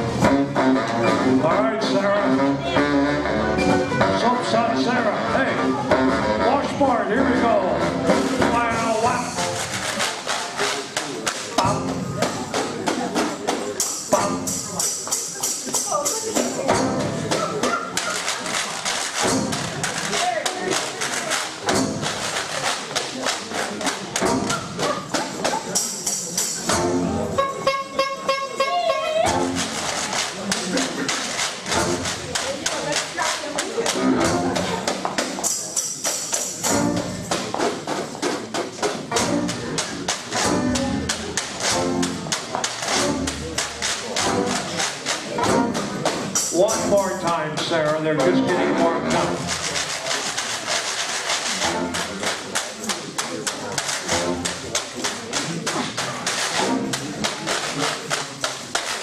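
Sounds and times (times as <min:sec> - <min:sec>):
jazz band playing: 0:00.0 - 0:59.0.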